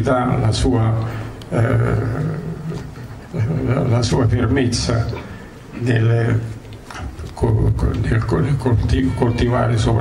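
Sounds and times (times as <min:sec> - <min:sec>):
man speaking over public address: 0:00.0 - 0:02.6, 0:03.4 - 0:10.0.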